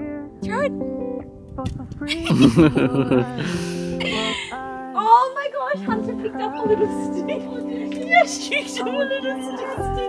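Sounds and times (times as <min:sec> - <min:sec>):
plucked guitar music: 0:00.0 - 0:04.6
people laughing: 0:02.2 - 0:04.6
voices: 0:04.1 - 0:10.0.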